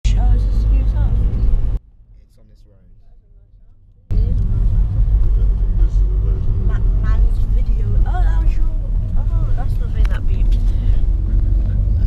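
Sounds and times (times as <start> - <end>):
car driving rumble inside cabin: 0.0 - 12.0
faint road noise: 0.0 - 12.0.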